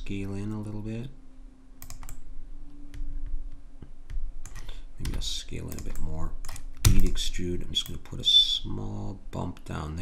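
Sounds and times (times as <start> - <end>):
faint steady hum: 0.0 - 10.0
computer keys and mouse clicks: 1.8 - 7.2.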